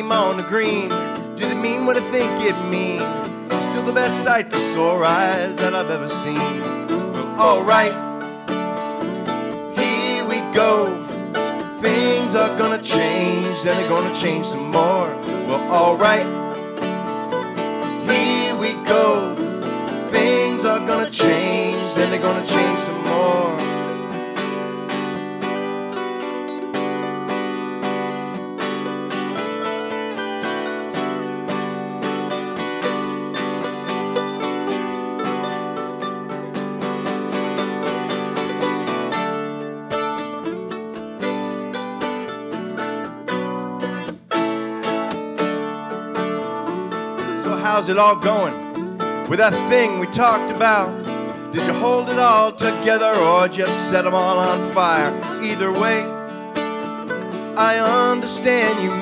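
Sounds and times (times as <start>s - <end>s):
person singing: 0.0s - 25.7s, 46.3s - 59.0s
acoustic guitar: 0.0s - 59.0s
mandolin: 0.0s - 59.0s.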